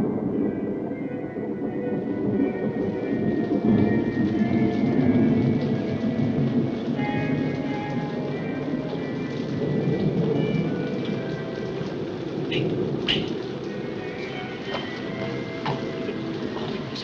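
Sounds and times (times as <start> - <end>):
faint music: 0.0 - 17.0
heavy rain: 0.0 - 17.0
rolling thunder rumble: 0.0 - 17.0.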